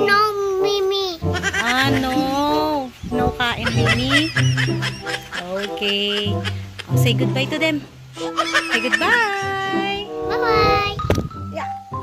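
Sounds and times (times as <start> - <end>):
child making wavering voice sounds: 0.0 - 1.6.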